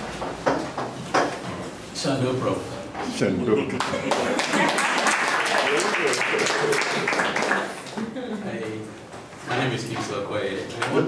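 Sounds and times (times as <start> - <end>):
sharp knocks: 0.2 - 1.4.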